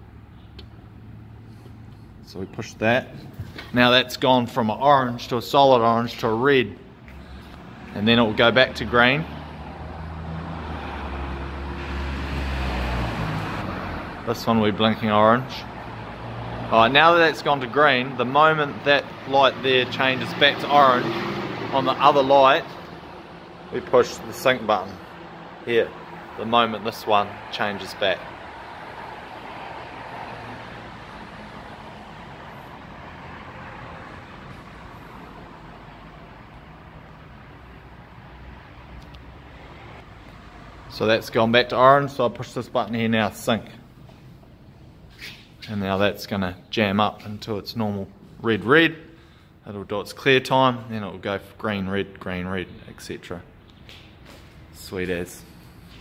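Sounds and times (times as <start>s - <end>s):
vehicle engine rumble: 0.0s - 3.8s, 6.8s - 46.2s
distant road traffic: 0.0s - 56.0s.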